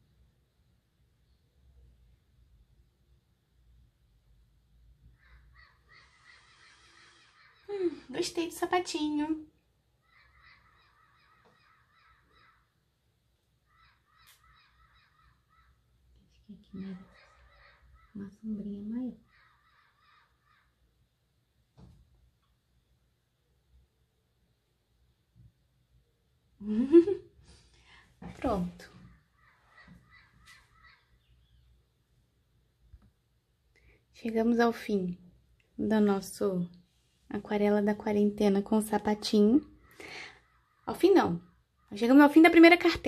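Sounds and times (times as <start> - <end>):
faint bird calls: 5.1 - 8.2, 9.9 - 12.9, 13.6 - 21.0, 27.9 - 32.0, 39.5 - 42.2.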